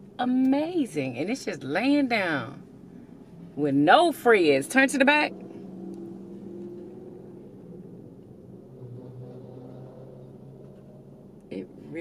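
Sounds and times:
car engine humming: 0.0s - 12.0s.

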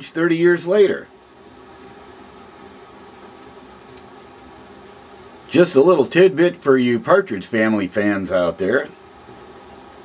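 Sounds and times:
background hiss: 0.0s - 10.0s
faint hum: 0.0s - 10.0s.

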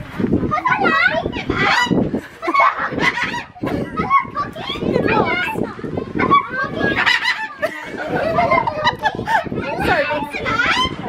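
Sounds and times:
children's voices: 0.0s - 11.0s.

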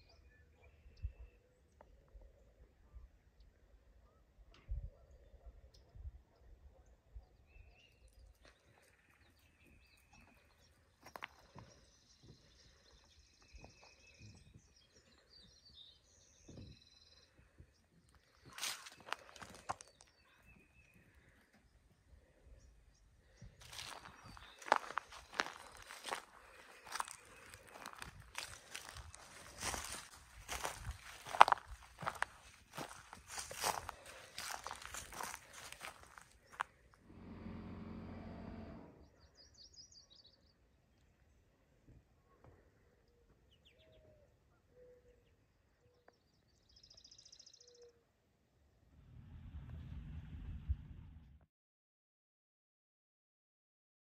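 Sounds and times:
footsteps crunching on gravel: 18.4s - 20.1s, 23.6s - 36.7s
faint bird calls: 42.2s - 46.2s.

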